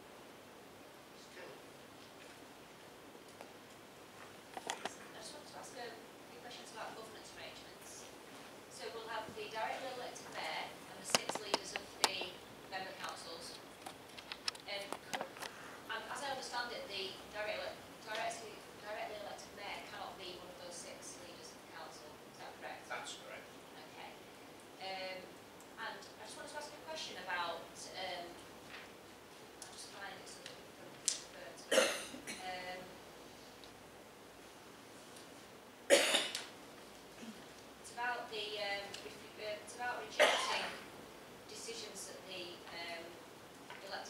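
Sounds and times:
woman speaking: 4.8 - 8.1, 8.7 - 13.6, 14.5 - 15.3, 15.9 - 24.2, 24.8 - 28.4, 29.6 - 33.0, 37.9 - 40.9, 41.5 - 44.0
person coughing: 31.7 - 32.5, 35.9 - 36.4, 40.2 - 40.8.

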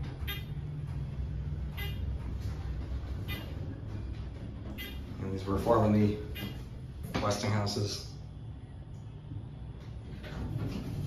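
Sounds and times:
elevator cab rumbling: 0.0 - 11.0.

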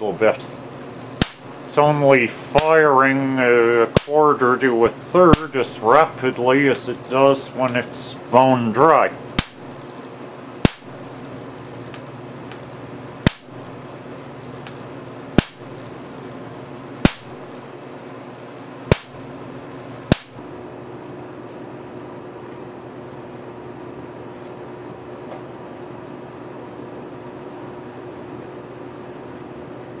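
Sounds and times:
sparks cracking: 0.0 - 20.4
steady low hum: 0.0 - 30.0.

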